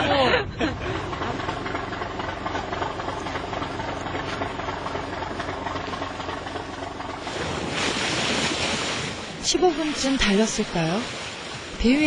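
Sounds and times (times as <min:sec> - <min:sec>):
motorboat engine hum: 0:00.0 - 0:12.0
water rushing along hull: 0:00.0 - 0:12.0.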